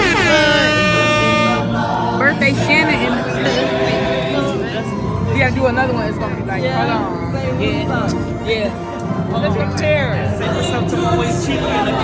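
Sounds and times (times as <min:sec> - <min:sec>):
steady bass: 0:00.0 - 0:03.0
loud singing voice: 0:00.0 - 0:05.4, 0:10.3 - 0:12.0.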